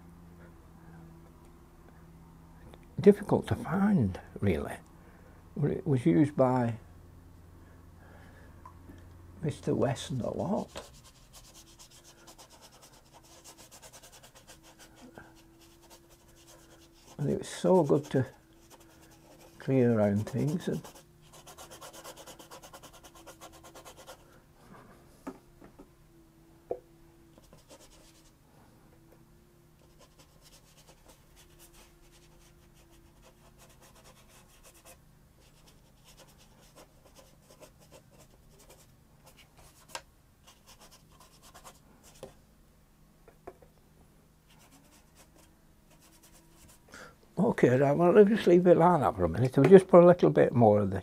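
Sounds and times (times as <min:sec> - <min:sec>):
low steady hum: 0:00.0 - 0:51.0
brush stroking paper: 0:10.1 - 0:24.2, 0:27.4 - 0:28.3, 0:29.8 - 0:42.3, 0:44.5 - 0:46.8.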